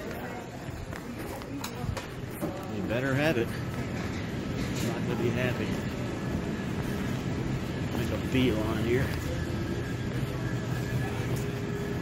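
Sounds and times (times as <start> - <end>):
ventilation and refrigerator hum: 0.0 - 12.0
faint steady tones: 2.8 - 12.0.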